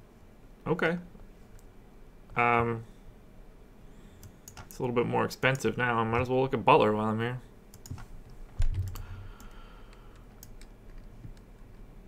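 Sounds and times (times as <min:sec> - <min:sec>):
computer keyboard clicks: 0:04.2 - 0:04.8, 0:07.7 - 0:11.8.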